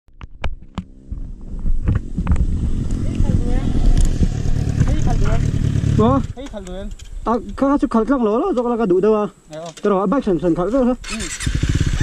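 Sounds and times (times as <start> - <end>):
wind rushing on microphone: 0.2 - 8.0
motorcycle engine: 0.5 - 6.6, 11.0 - 12.0.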